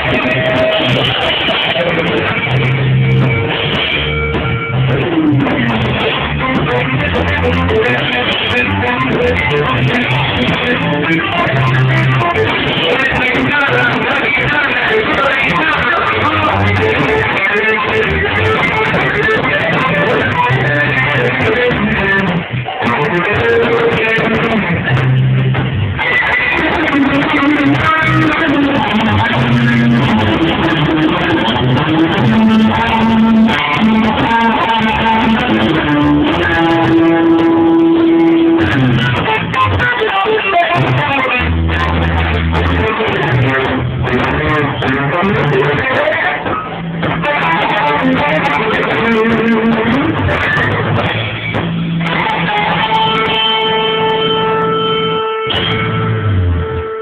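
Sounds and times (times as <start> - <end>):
bass guitar: 0.0 - 57.0
drums: 0.0 - 57.0
electric guitar: 0.0 - 57.0
live rock band playing: 0.0 - 57.0.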